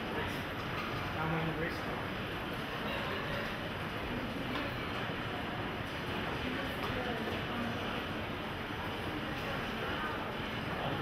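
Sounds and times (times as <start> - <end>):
faint voices talking: 0.0 - 11.0
indoor background noise: 0.0 - 11.0.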